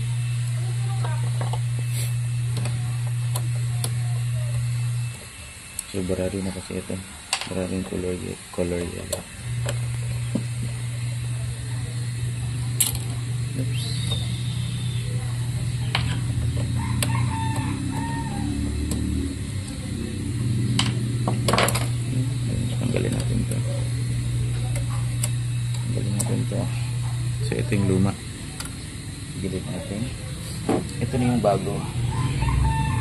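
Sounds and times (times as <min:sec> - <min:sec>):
steady low hum: 0:00.0 - 0:33.0
bird calling: 0:13.6 - 0:18.5.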